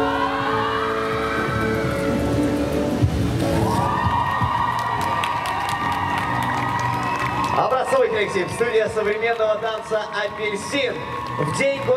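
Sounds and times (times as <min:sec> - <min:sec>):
audience cheering and clapping: 0:03.3 - 0:11.9.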